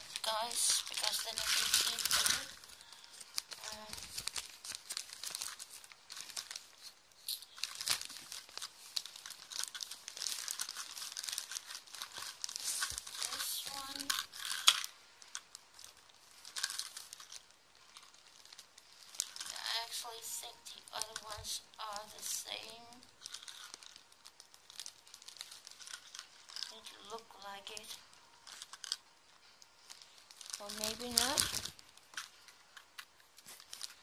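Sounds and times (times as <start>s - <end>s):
plastic packaging crinkling: 0.0s - 34.0s.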